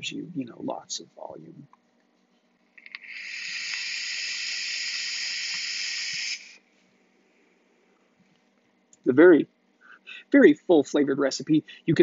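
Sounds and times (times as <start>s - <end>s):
vape air hiss: 2.8s - 6.7s.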